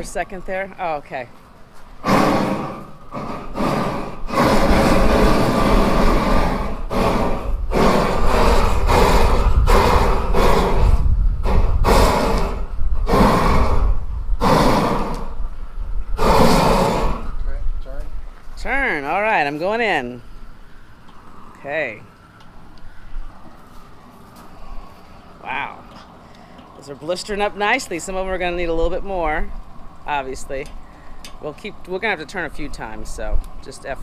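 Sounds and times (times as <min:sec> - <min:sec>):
gas torch flame rushing: 0:02.0 - 0:17.4.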